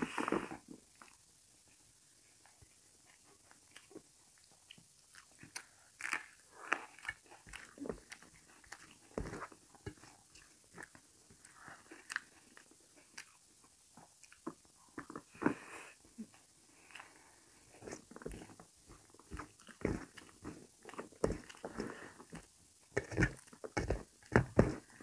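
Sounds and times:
wet chewing and smacking: 2.6 - 15.5, 17.8 - 25.0
fingers working food on steel plate: 22.9 - 24.9.

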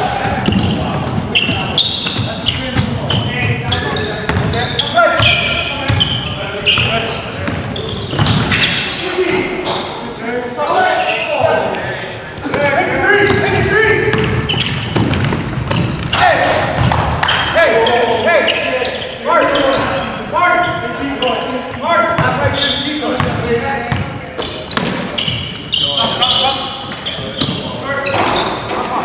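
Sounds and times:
players calling out: 0.0 - 29.0
basketball bouncing on hardwood floor: 13.2 - 16.1.

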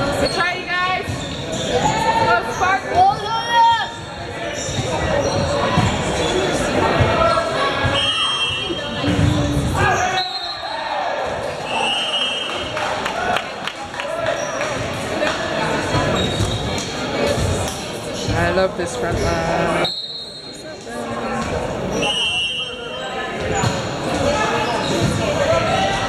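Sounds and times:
voices echoing in a hall: 0.0 - 26.0.

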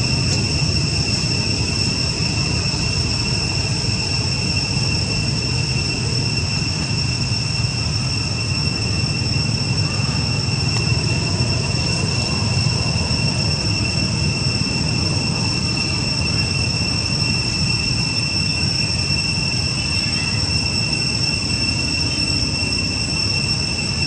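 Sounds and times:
high-pitched whine: 0.0 - 24.0.

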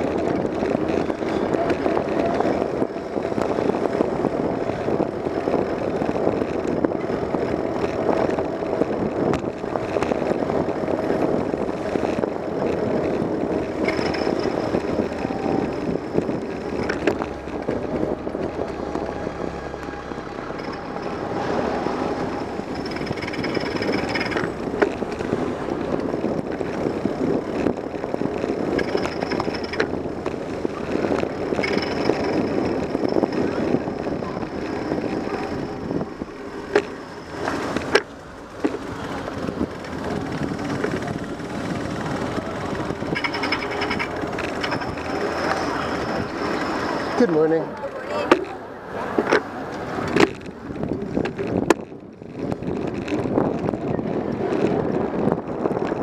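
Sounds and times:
bike knocks and rattles over bumps: 0.0 - 19.2
passing traffic: 0.0 - 56.0
tyres rumbling on pavement: 0.0 - 56.0.

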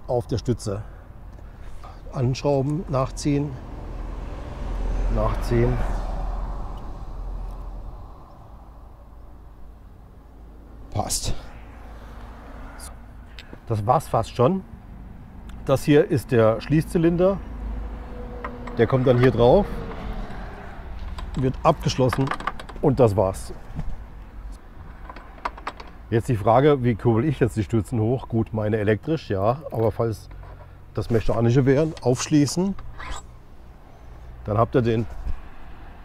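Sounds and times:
passing vehicle rumble: 0.8 - 27.8, 30.2 - 36.0.

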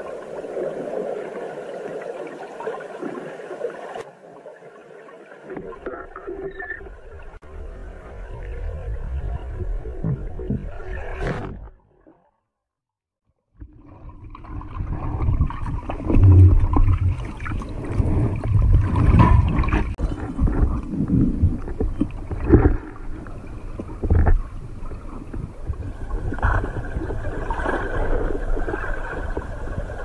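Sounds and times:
water sloshing underwater: 0.0 - 12.6, 13.4 - 30.0
underwater rumbling: 5.4 - 12.3, 13.6 - 30.0.

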